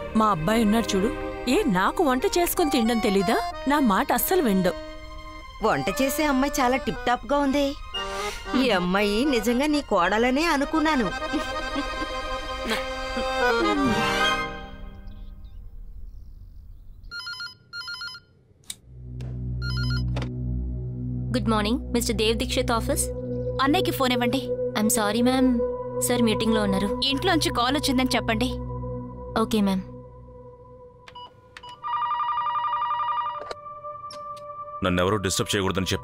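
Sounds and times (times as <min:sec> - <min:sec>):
desk telephone ringing: 0:17.1 - 0:18.3, 0:31.2 - 0:33.6
telephone ringing with warbling trill: 0:19.6 - 0:20.1, 0:31.7 - 0:33.5.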